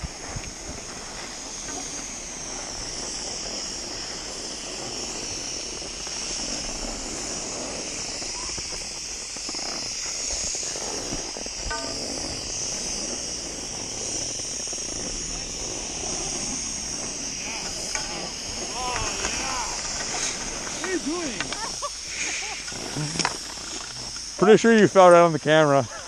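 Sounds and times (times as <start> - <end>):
skis sliding on snow: 0.0 - 26.0.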